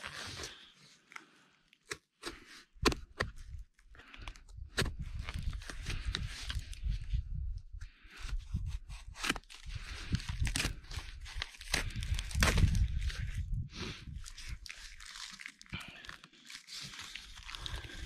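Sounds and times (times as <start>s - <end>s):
knife cutting cardboard and tape: 8.3s - 13.1s
cardboard tearing open: 8.9s - 13.2s.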